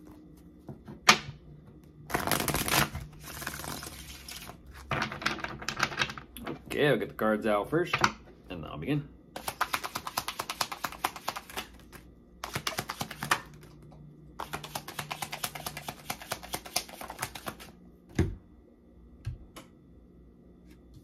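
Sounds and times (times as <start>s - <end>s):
cards being shuffled: 2.1s - 5.9s, 9.4s - 13.8s, 14.4s - 17.7s.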